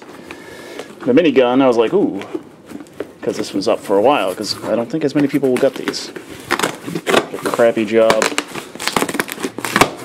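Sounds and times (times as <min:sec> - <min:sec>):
cardboard box tape ripping: 0:05.3 - 0:10.0.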